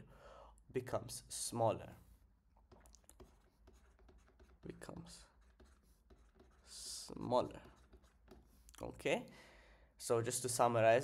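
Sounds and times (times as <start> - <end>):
stylus writing on tablet screen: 2.0 - 8.7.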